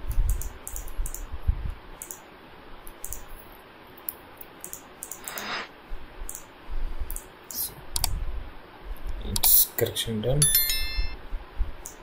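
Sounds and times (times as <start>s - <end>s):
computer mouse clicks: 0.0s - 1.3s, 2.0s - 2.2s, 2.8s - 3.3s, 4.0s - 5.6s, 6.3s - 6.5s, 7.1s - 8.2s.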